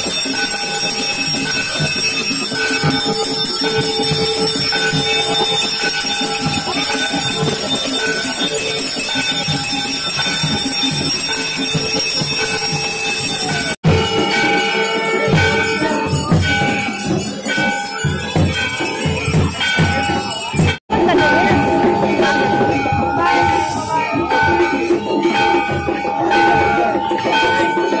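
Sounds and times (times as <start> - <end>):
rapid drum beat: 0.0 - 28.0
temple bells ringing: 0.0 - 28.0.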